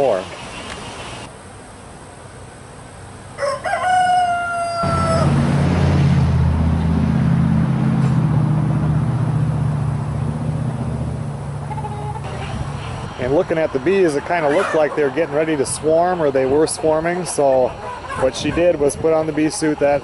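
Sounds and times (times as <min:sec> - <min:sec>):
rooster crowing: 0:03.3 - 0:05.4.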